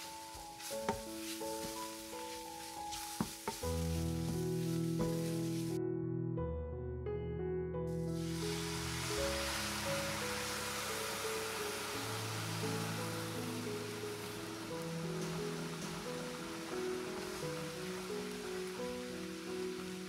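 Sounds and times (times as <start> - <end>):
milk sizzling in hot pan: 0.0 - 5.8, 8.1 - 20.0
background music held notes: 0.0 - 6.8, 7.7 - 20.0.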